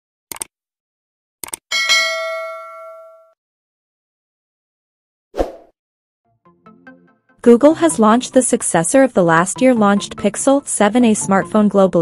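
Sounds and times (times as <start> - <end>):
bright bell chime: 1.7 - 3.4.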